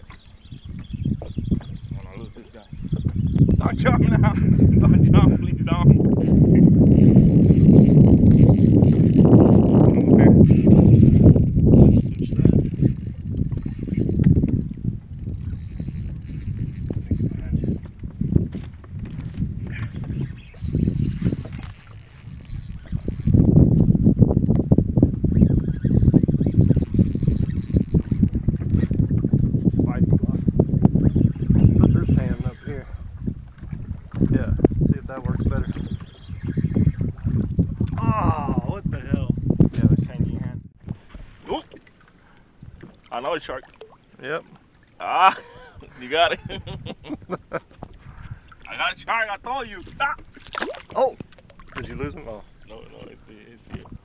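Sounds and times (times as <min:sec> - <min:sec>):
wind buffeting microphone: 0:00.0 - 0:54.0
fishing reel rattling: 0:03.7 - 0:17.9, 0:20.4 - 0:23.6, 0:25.5 - 0:29.1.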